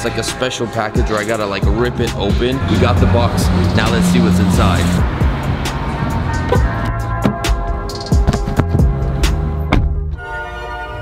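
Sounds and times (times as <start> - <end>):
regular percussion hits: 1.1 - 9.4
held bass notes: 1.3 - 10.1.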